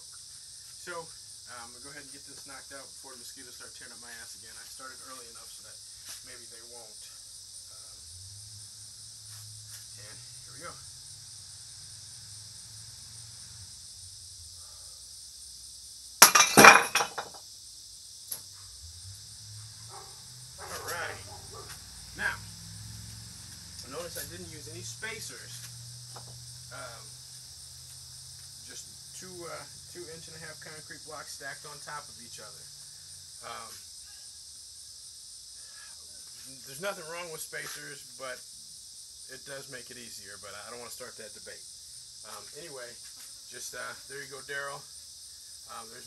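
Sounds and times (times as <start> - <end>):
crickets chirring: 0.0 - 46.0
high-pitched insect chorus: 0.0 - 46.0
broken pieces clattering: 16.2 - 17.4
concrete crumbling and falling: 16.2 - 17.4.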